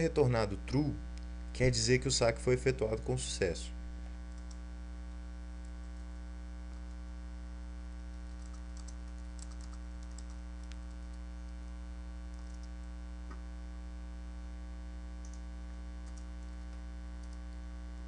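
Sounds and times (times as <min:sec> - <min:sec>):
electrical mains hum: 0:00.0 - 0:18.0
keyboard typing clicks: 0:08.3 - 0:11.0, 0:12.3 - 0:13.4, 0:15.2 - 0:15.4, 0:16.0 - 0:16.5, 0:17.2 - 0:17.6.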